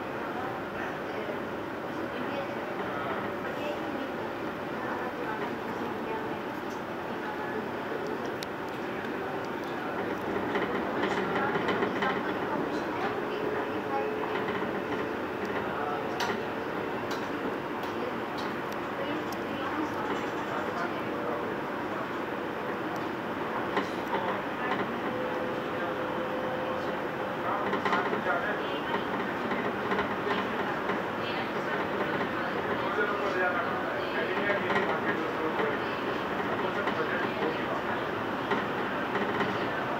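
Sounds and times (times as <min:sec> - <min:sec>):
train cabin rumble: 0:00.0 - 0:39.9
wheels clicking over rails: 0:08.1 - 0:21.4, 0:22.1 - 0:26.1, 0:26.8 - 0:39.9.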